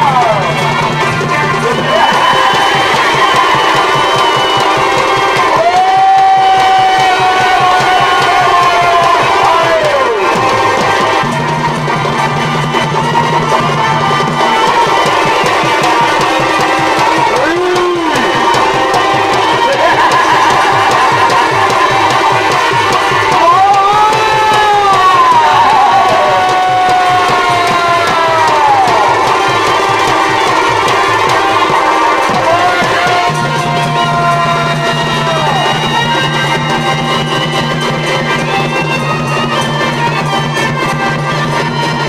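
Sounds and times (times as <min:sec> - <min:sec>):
fast dense drumming: 0:00.0 - 0:42.0.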